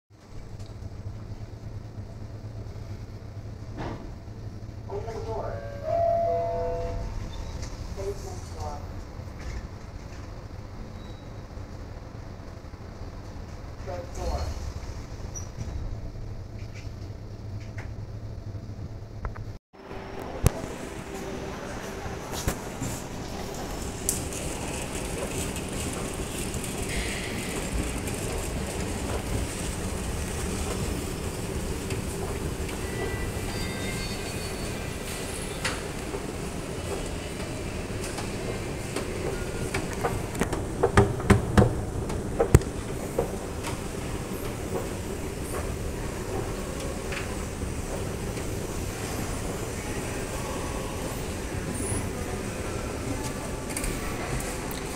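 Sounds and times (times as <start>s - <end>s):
elevator car humming: 0.2s - 54.9s
elevator doors sliding open: 3.0s - 12.4s, 20.0s - 54.9s
elevator chime: 5.0s - 7.6s, 32.8s - 34.8s.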